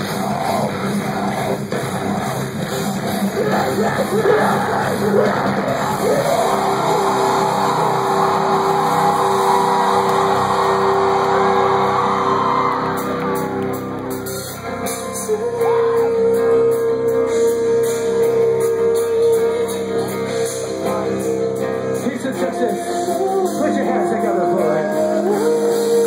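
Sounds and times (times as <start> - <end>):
live metal band playing: 0.0 - 26.0
vocalist yelling: 3.3 - 12.8.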